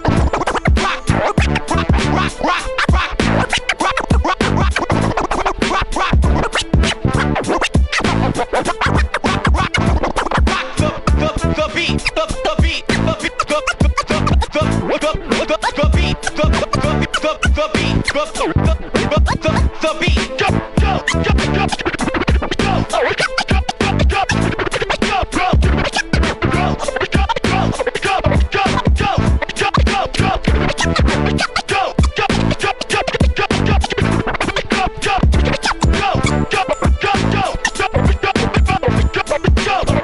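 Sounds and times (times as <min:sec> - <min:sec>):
hip hop beat: 0:00.0 - 0:40.0
record scratching: 0:00.0 - 0:40.0.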